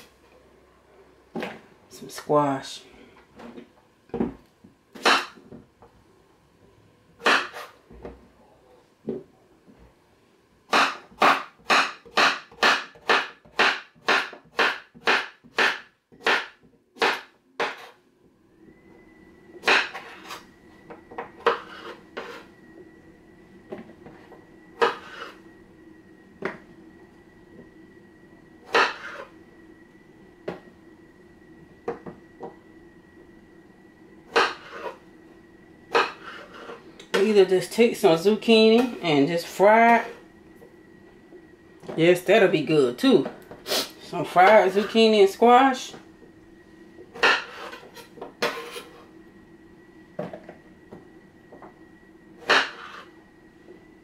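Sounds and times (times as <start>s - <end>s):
high whine with low hum: 0.0s - 54.0s.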